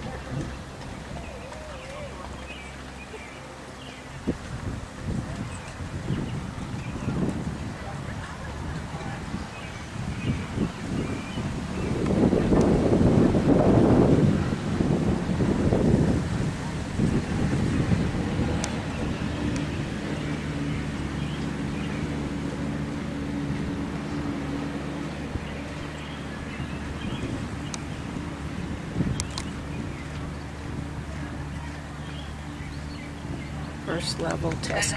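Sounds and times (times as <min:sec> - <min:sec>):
wind rumbling on microphone: 0:00.0 - 0:34.9.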